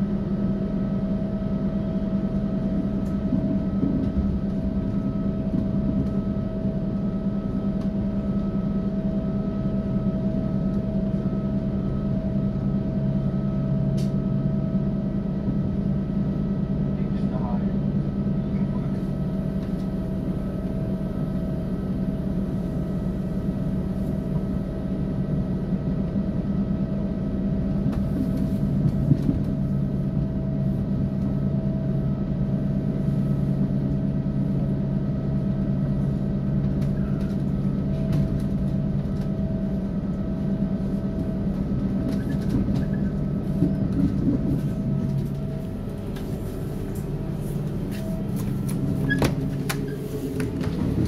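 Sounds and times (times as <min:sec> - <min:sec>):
diesel railcar engine hum: 0:00.0 - 0:51.0
train running rumble: 0:00.0 - 0:51.0.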